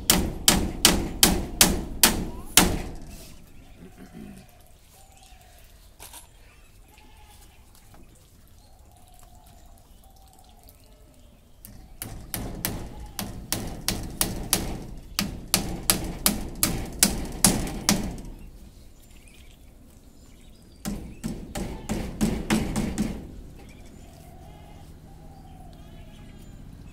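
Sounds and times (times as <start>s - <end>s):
hammer knocking bamboo slats: 0.0s - 3.5s, 11.7s - 18.6s, 20.8s - 23.7s.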